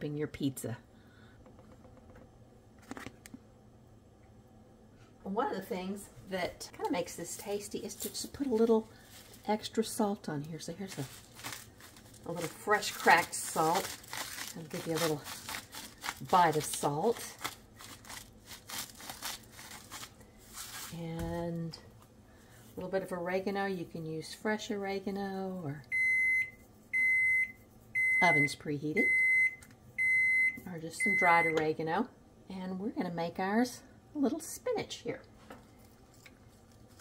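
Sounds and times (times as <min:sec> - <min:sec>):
low steady hum: 0:00.0 - 0:37.0
salt grinder crunching: 0:10.9 - 0:20.9.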